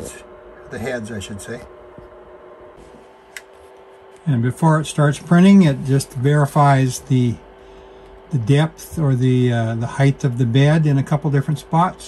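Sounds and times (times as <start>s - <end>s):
printer fans humming: 0.0s - 12.0s.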